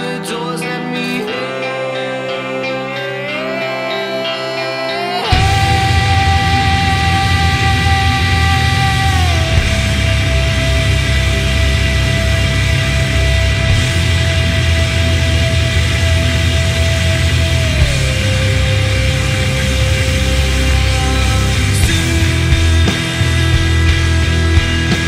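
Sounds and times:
heavy rock music: 0.0 - 25.0.

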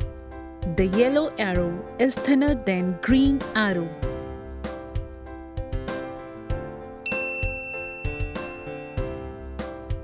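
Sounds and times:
light music with plucked notes: 0.0 - 10.0
bright ding chime: 7.1 - 9.1.

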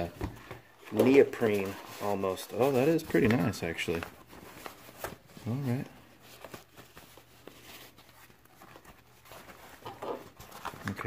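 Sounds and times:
rustling of pouch and paper: 0.0 - 11.0.

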